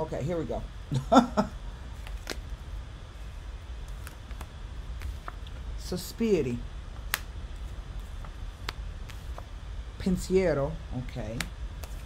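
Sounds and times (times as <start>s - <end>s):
low steady hum: 0.0s - 12.0s
cards snapping on table: 7.1s - 7.3s.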